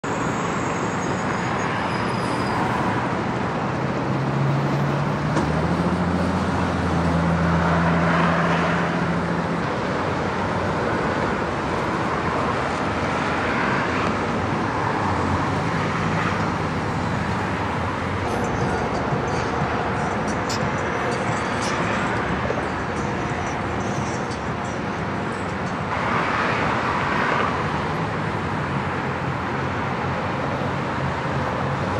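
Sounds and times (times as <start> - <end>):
freeway traffic rushing: 0.0 - 31.9.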